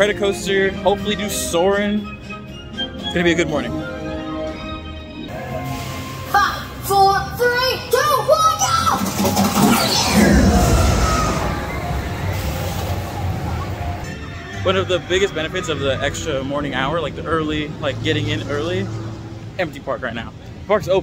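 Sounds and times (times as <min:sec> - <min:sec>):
background music: 0:00.0 - 0:21.0
roller coaster rushing past: 0:08.7 - 0:19.2.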